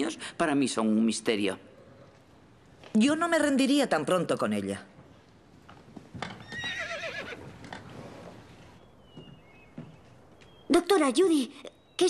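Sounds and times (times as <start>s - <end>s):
horse whinnying: 6.2s - 8.0s.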